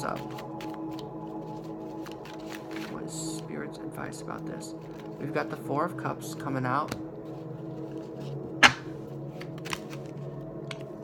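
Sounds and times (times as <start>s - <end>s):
soft background music: 0.0s - 11.0s
cards being shuffled: 0.1s - 3.0s, 7.8s - 10.1s
sharp card snap: 8.6s - 8.9s.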